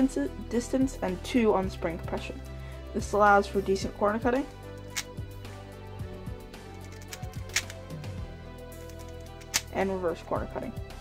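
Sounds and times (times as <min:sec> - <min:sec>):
quiet background music: 0:00.0 - 0:11.0
speed cube clicks: 0:06.9 - 0:07.8, 0:08.9 - 0:09.7.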